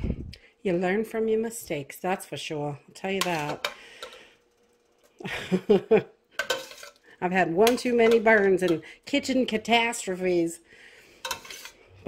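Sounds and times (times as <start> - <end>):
woman laughing: 5.2 - 6.2.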